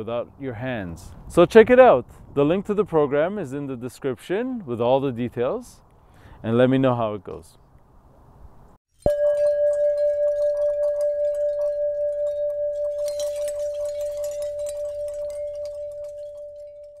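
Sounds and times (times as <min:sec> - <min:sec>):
bell-like chime ringing: 0:09.0 - 0:17.0.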